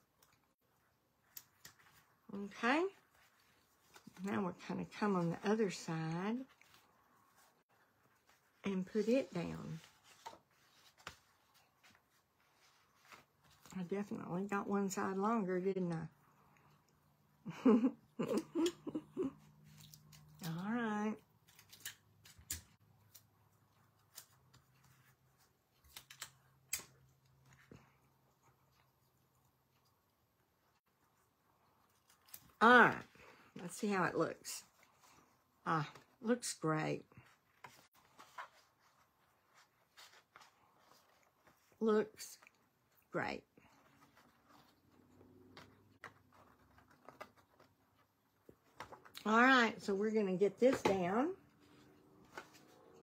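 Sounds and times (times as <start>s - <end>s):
hands rustling paper card: 43.7s - 49.1s
paper and card tapping: 50.7s - 51.0s.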